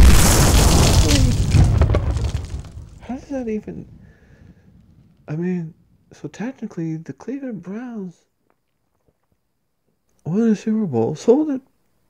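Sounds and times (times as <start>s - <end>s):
explosion boom with deep rumble: 0.0s - 6.1s.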